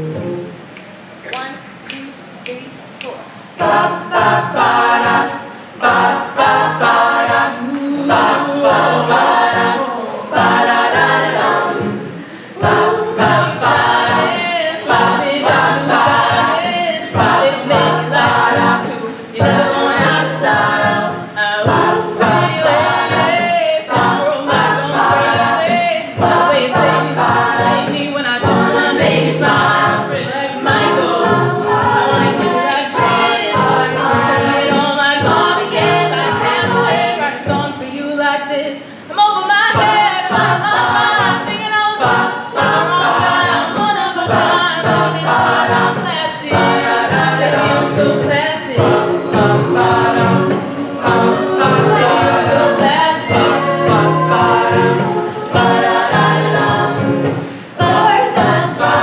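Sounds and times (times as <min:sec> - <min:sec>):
short percussive vocal strokes: 0:00.0 - 0:36.6, 0:39.8 - 0:59.0
rhythmic low vocal part: 0:00.0 - 0:59.0
backing voices singing: 0:01.2 - 0:59.0
female lead singing into microphone: 0:03.6 - 0:59.0.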